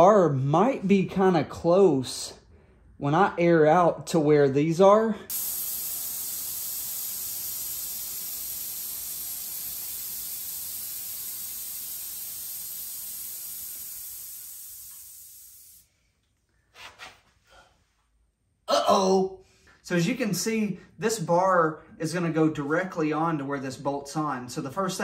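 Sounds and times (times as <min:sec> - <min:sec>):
compressed air hissing: 0:05.3 - 0:16.0.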